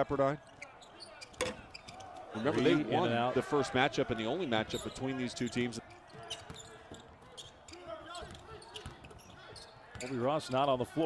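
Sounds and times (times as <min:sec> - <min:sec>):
faint court noise: 0:00.0 - 0:11.0.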